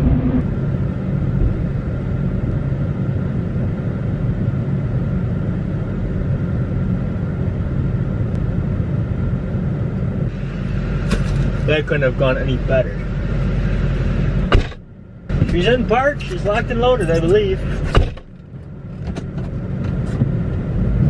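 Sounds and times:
diesel truck engine rumble: 0.0 - 21.0
road noise: 0.0 - 21.0.

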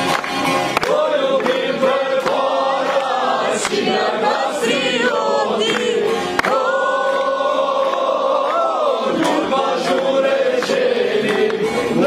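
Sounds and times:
folk choir singing: 0.0 - 12.0.

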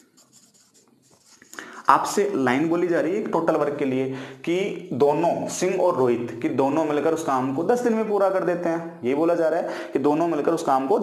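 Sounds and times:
marker scratching on whiteboard: 0.0 - 2.4.

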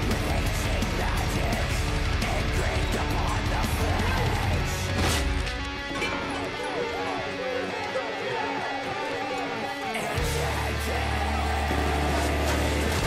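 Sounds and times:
person singing: 0.0 - 4.9, 6.1 - 13.0
guitar-driven rock music: 0.0 - 13.0.

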